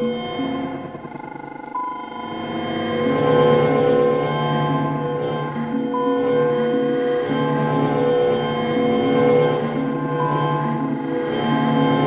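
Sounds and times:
high synth tone: 0:00.0 - 0:09.9.

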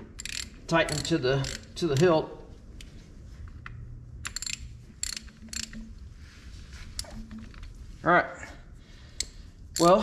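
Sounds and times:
ratchet wrench clicking: 0:00.2 - 0:02.0, 0:04.2 - 0:05.9, 0:09.2 - 0:10.0.

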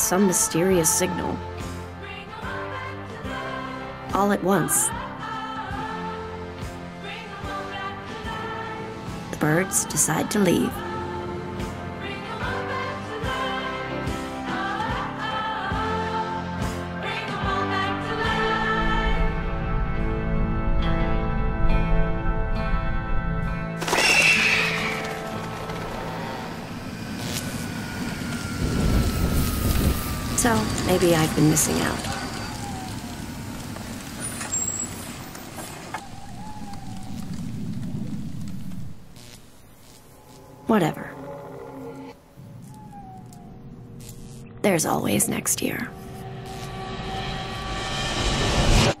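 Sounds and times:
falling screech: 0:23.8 - 0:30.4, 0:31.7 - 0:44.5
rushing aircraft-like roar: 0:23.8 - 0:44.6, 0:45.8 - 0:49.0
low rumble: 0:25.2 - 0:49.0.

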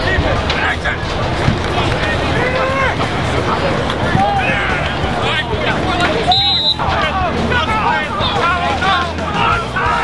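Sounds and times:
babble of voices: 0:00.0 - 0:10.0
short high whistle blast: 0:06.3 - 0:06.8.

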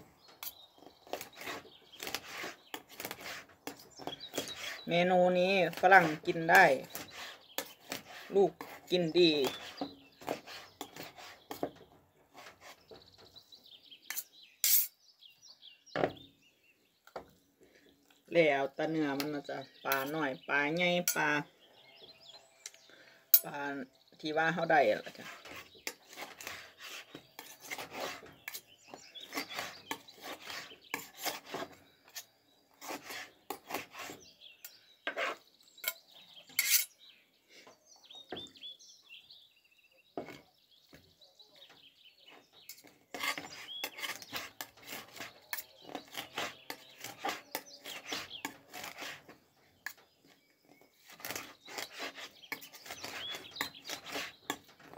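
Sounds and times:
small bird chirping: 0:00.0 - 0:54.9
knife scraping board: 0:00.4 - 0:04.9, 0:05.7 - 0:11.7, 0:12.3 - 0:13.0, 0:25.0 - 0:34.2, 0:35.1 - 0:36.0, 0:36.6 - 0:36.9, 0:42.7 - 0:50.0, 0:51.0 - 0:54.9
knife and fork on cutting board: 0:36.6 - 0:36.9.

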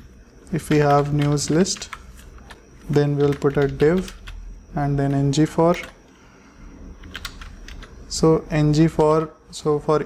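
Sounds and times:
faint low hum: 0:00.0 - 0:10.0
keyboard typing: 0:00.4 - 0:04.4, 0:05.0 - 0:06.0, 0:07.0 - 0:08.0, 0:08.8 - 0:09.3.

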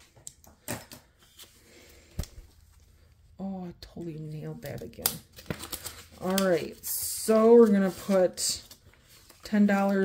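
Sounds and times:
handling paper money: 0:03.8 - 0:10.0.

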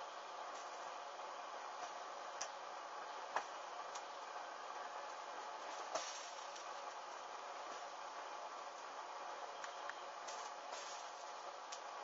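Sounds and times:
garment burning with faint hiss: 0:00.4 - 0:12.0
sharp crackles of fire: 0:00.4 - 0:12.0.

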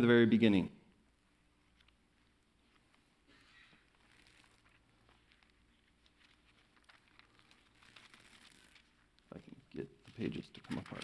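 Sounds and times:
pages rustling and crinkling: 0:02.6 - 0:09.3, 0:10.0 - 0:11.0.

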